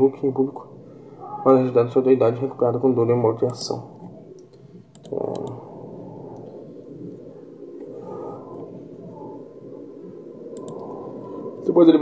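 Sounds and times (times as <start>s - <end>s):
faint wavering tones: 0.0s - 12.0s
room tone background noise: 0.0s - 12.0s.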